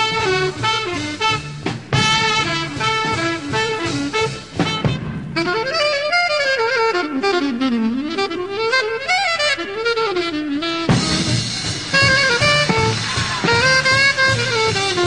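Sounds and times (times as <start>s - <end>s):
jazz band playing: 0.0s - 15.0s
saxophone solo sliding in pitch: 0.0s - 15.0s.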